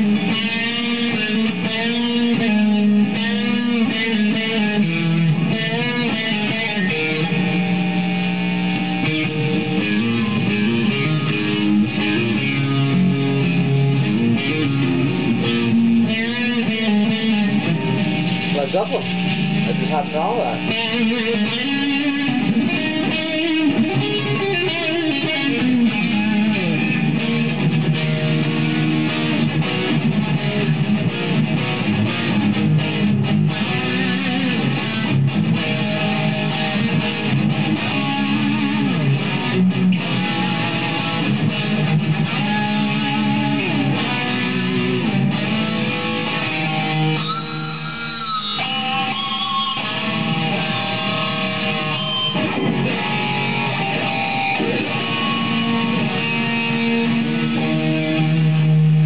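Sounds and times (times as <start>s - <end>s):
electric guitar through amplifier: 0.0s - 59.0s.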